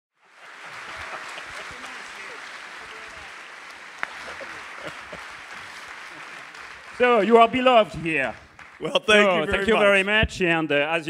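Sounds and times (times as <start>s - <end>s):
audience applauding: 0.2s - 10.1s
faint voices: 0.7s - 5.0s.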